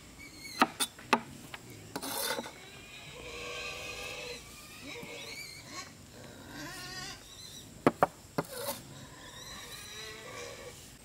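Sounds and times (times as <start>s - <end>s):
cleaver scraping cutting board: 2.0s - 2.5s, 8.4s - 8.8s.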